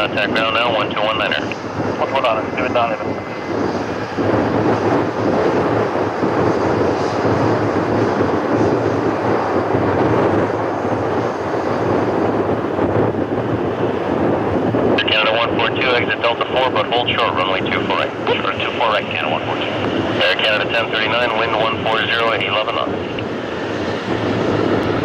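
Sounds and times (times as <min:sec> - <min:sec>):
jet engines at taxi power: 0:00.0 - 0:25.0.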